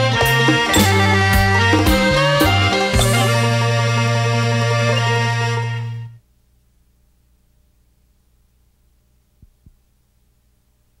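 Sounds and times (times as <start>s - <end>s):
faint low hum: 3.0s - 11.0s.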